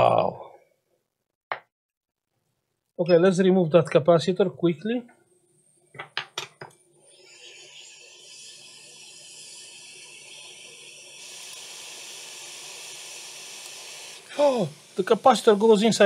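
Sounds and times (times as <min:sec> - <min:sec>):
hot air gun hissing: 0:07.1 - 0:16.0.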